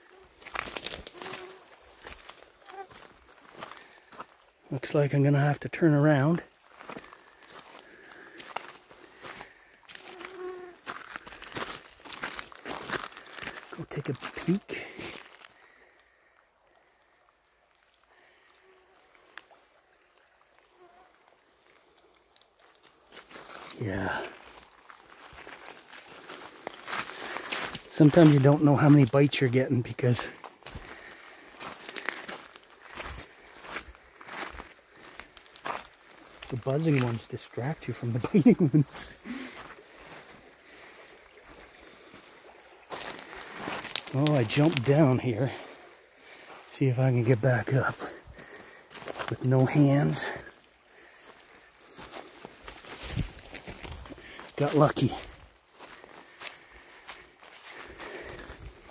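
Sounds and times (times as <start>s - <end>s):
faint outdoor background noise: 0.0s - 58.9s.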